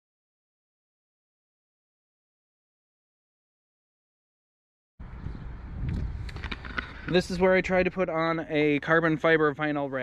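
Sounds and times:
wind noise on microphone: 5.0s - 8.1s.

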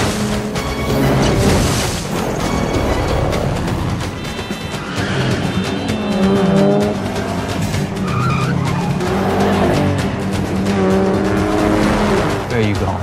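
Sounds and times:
car engines revving: 0.0s - 2.4s, 3.3s - 12.9s
tyres squealing: 4.4s - 9.9s.

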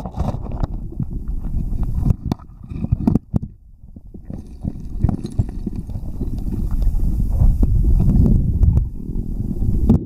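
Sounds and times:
underwater rumble of moving water: 0.0s - 10.0s
stones knocking together: 4.2s - 6.7s.

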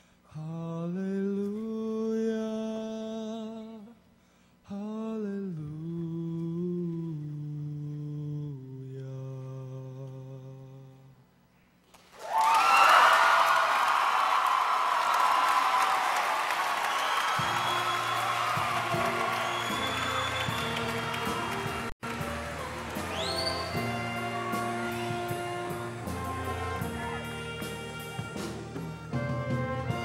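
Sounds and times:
audience applause and cheering: 12.0s - 30.0s
choir humming a cappella chord: 17.6s - 29.1s
low held instrumental notes: 18.1s - 30.0s.

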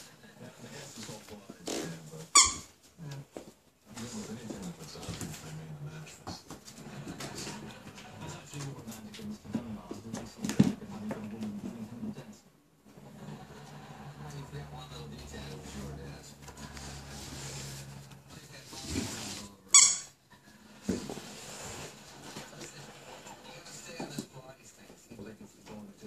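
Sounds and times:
dog playing on wooden floor: 1.0s - 11.9s
dog toy squeak: 2.3s - 2.7s, 19.7s - 20.2s.

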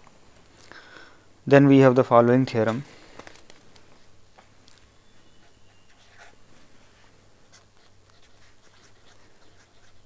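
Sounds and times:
low steady hum: 0.0s - 10.0s
pen scratching on paper: 5.4s - 6.4s, 7.5s - 10.0s.

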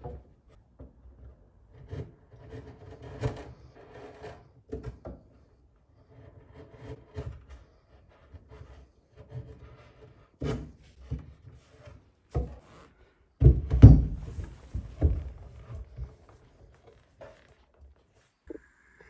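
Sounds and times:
chisel paring and scraping wood: 0.0s - 18.2s.

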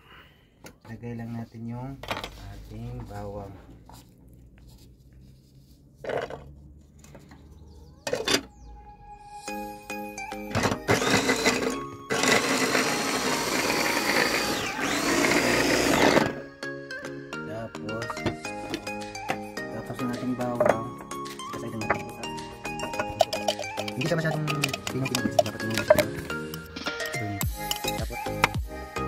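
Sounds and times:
background music: 7.8s - 29.0s
electric food chopper running: 10.6s - 16.4s.

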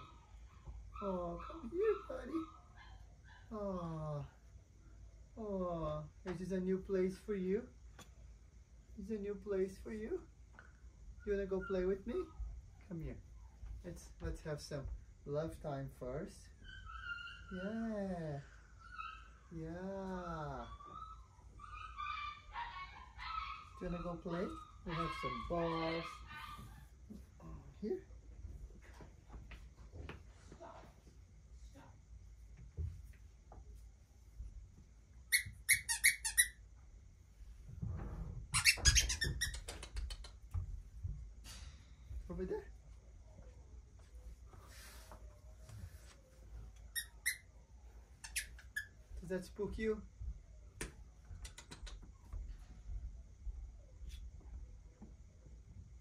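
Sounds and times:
puppy whimpering: 16.6s - 18.0s, 20.4s - 26.9s
squeaky dog toy squeaks: 35.3s - 36.6s, 38.5s - 39.7s, 46.9s - 47.5s, 48.2s - 49.0s.

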